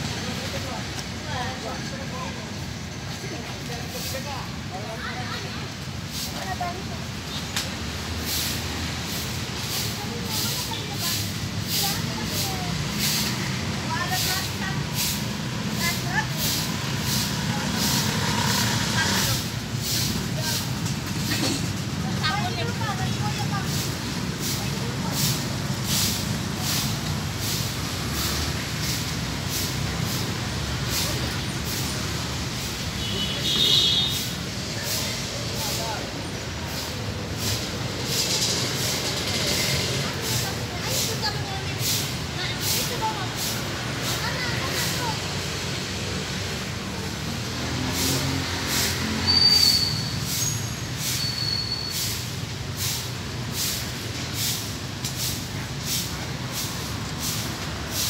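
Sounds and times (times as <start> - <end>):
broom sweeping paving stones: 0.0 - 58.0.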